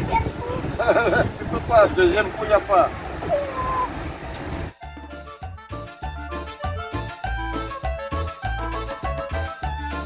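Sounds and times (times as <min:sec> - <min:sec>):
outdoor background noise: 0:00.0 - 0:04.8
background music with low beat: 0:04.4 - 0:10.0.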